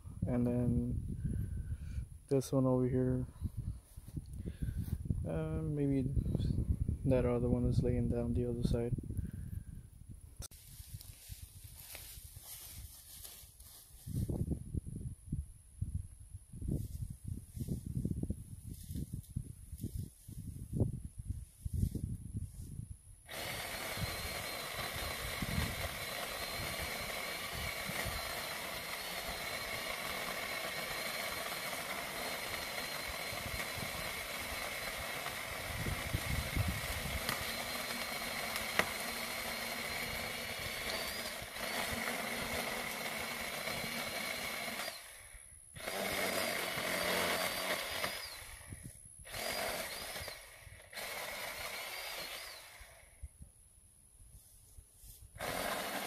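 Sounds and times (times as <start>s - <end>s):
electric chainsaw cutting wood: 23.2s - 53.2s, 55.4s - 56.0s.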